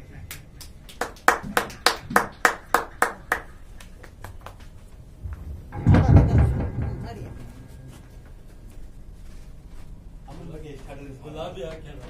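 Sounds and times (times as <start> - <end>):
hand claps: 0.3 - 4.9
low rumble and thump: 5.0 - 9.2.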